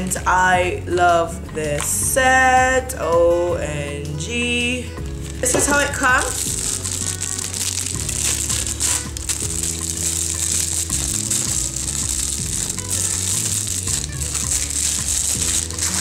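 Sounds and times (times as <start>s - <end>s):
background music: 0.0s - 16.0s
plastic packaging crinkling: 5.0s - 16.0s.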